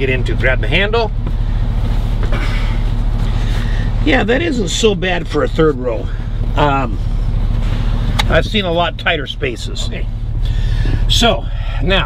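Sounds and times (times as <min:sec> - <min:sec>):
steady low hum: 0:00.0 - 0:12.0
clothing rustling: 0:01.2 - 0:04.0.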